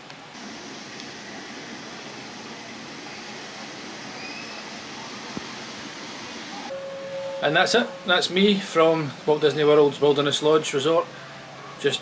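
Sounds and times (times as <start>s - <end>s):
outdoor ambient hiss: 0.0s - 12.0s.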